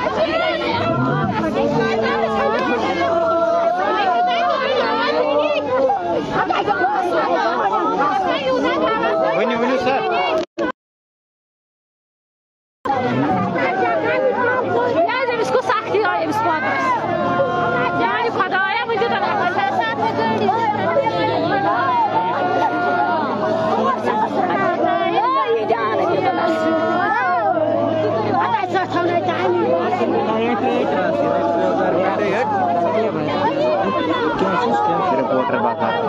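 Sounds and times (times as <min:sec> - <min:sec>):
women crying and talking: 0:00.0 - 0:10.3, 0:12.9 - 0:36.0
women wailing in grief: 0:00.0 - 0:10.4, 0:16.0 - 0:36.0
chatter: 0:00.0 - 0:10.7, 0:12.9 - 0:36.0.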